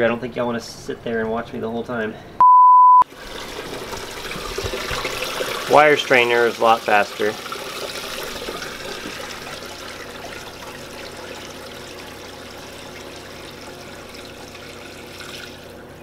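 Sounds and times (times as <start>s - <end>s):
liquid pouring and splashing: 3.1s - 15.9s.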